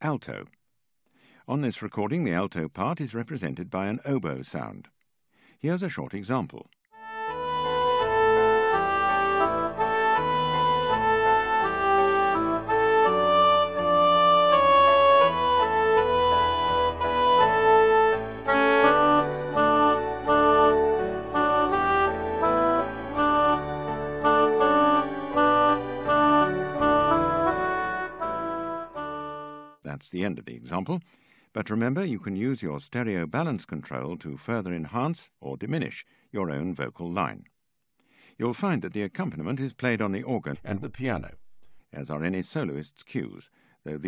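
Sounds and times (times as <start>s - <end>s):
oboe melody: 7.0s - 29.8s
piano accompaniment: 7.0s - 29.8s
organ: 7.1s - 29.7s.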